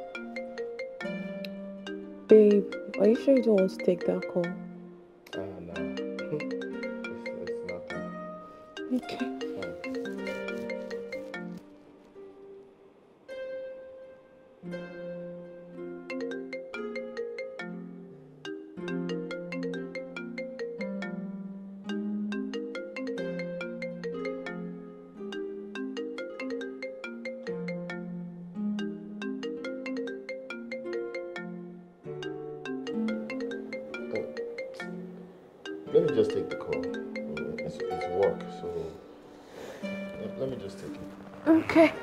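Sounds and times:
plucked and mallet background music: 0.0 - 11.8, 13.3 - 42.0.

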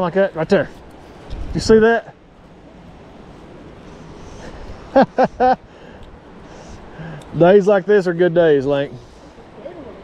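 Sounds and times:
river water rushing: 0.0 - 10.0
wind on microphone: 1.2 - 1.9.

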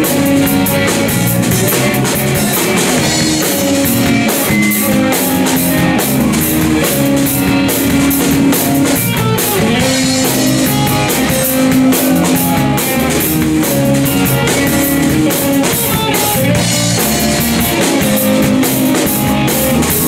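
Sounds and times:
drum kit with cymbal beat: 0.0 - 20.0
electric bass: 0.0 - 20.0
electric guitar: 0.0 - 20.0.

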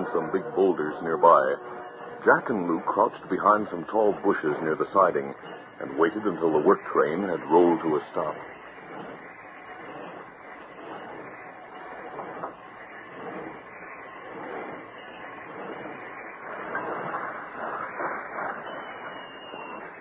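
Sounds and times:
steam locomotive hissing: 0.0 - 20.0.

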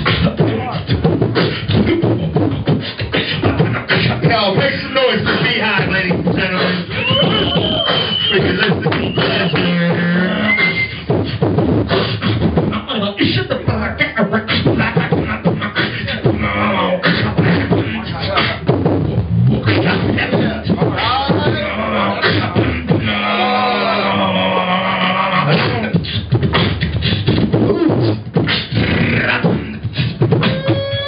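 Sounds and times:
higher sliding vocal tones: 0.0 - 11.1, 13.8 - 31.0
man beatboxing: 0.0 - 31.0
high whistle-like tone: 6.9 - 9.7, 10.3 - 11.0.

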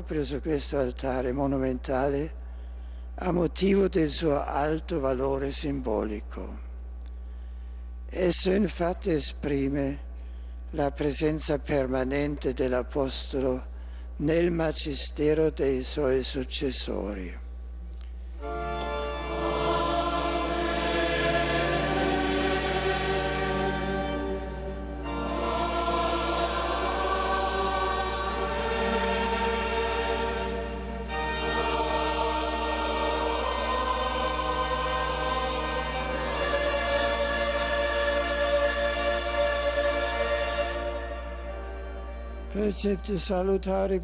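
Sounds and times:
choir singing long held notes: 18.4 - 43.0.

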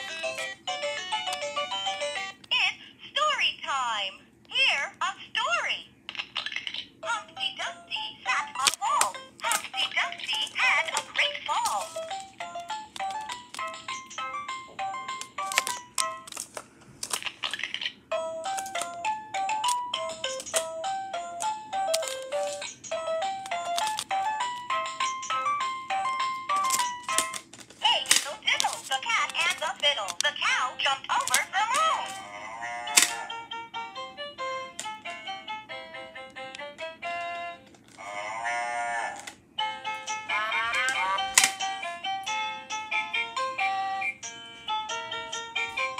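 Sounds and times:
recorded voice from toy speaker: 2.5 - 12.0, 27.8 - 33.4, 40.2 - 41.7
toy button clicks: 31.1 - 32.2, 32.9 - 33.4.

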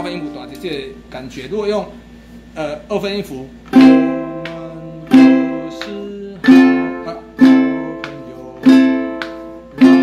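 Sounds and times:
ukulele chord strums: 3.7 - 10.0.

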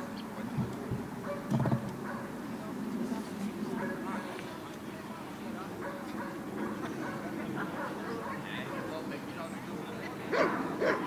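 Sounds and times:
dog barking: 1.2 - 2.3, 7.8 - 9.0, 10.3 - 11.0.

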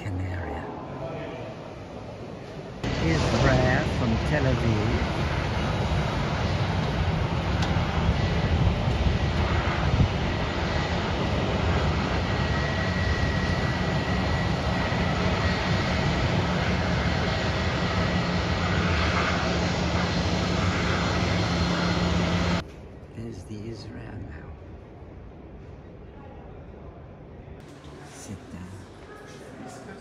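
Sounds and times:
jet engines rumbling and whining: 0.0 - 30.0.

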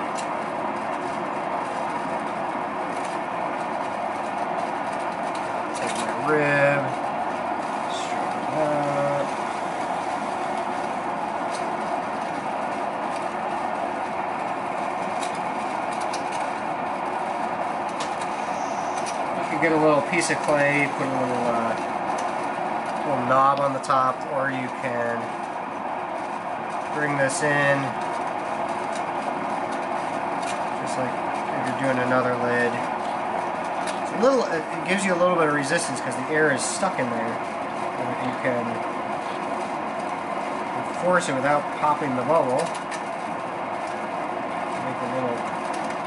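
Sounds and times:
pottery wheel motor humming: 0.0 - 46.0.

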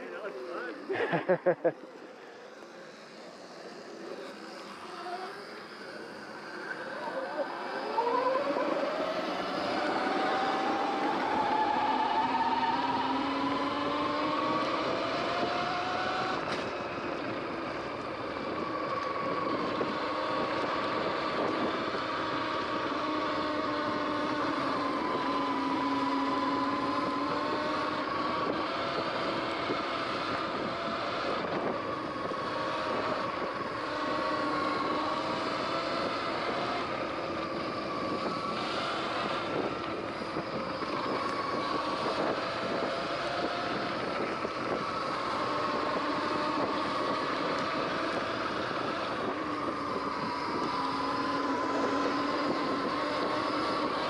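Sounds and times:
electric bike motor whining: 0.0 - 54.0
tyre and wind noise: 8.4 - 54.0.

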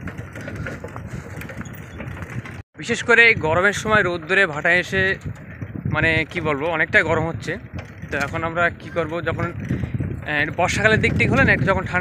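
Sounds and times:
faint rattles: 0.0 - 2.6, 3.5 - 12.0
bicycle tyres rumbling on dirt: 0.0 - 12.0.

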